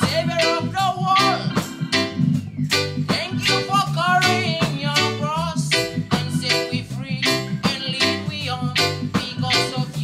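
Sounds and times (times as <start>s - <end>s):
person singing: 0.0s - 2.2s, 3.0s - 10.0s.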